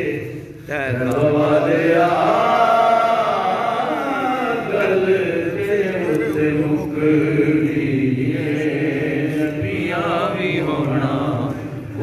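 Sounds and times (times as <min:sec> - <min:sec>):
man chanting into a microphone: 0:00.0 - 0:12.0.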